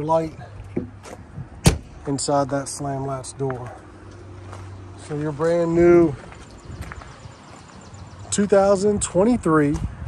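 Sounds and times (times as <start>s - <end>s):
outdoor background noise: 0.0s - 10.0s
footsteps on pavement: 0.5s - 10.0s.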